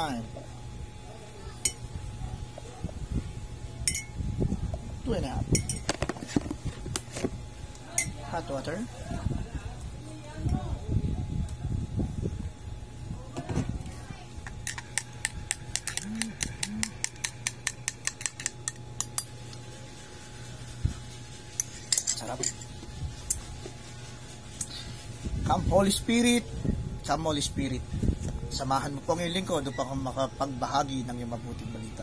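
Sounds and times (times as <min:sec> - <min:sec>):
ceramic clink: 0:03.9 - 0:04.2, 0:05.5 - 0:05.9.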